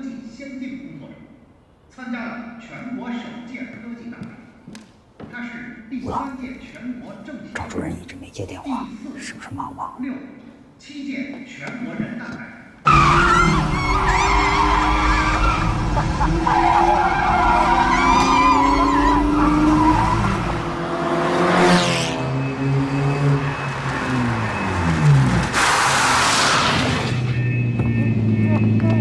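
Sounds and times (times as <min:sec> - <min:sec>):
tyres squealing and skidding: 0:12.8 - 0:20.8, 0:21.6 - 0:28.8
race car engine revving: 0:12.9 - 0:29.0.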